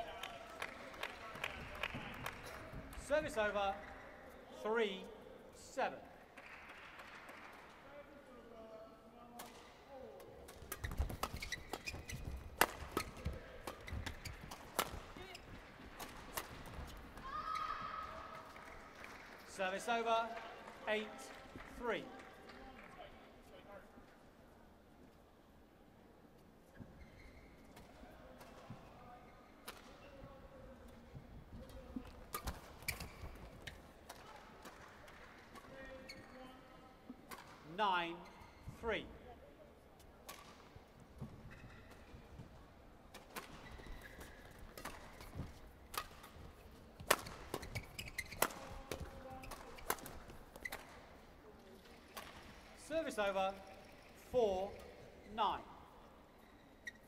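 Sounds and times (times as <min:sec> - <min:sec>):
murmur of arena crowd: 0:00.0 - 0:11.5
racket hitting shuttlecock: 0:10.5 - 0:15.2, 0:43.1 - 0:46.4, 0:47.0 - 0:51.1
high-pitched shoe squeals: 0:10.8 - 0:12.3, 0:27.0 - 0:27.6, 0:47.6 - 0:48.8.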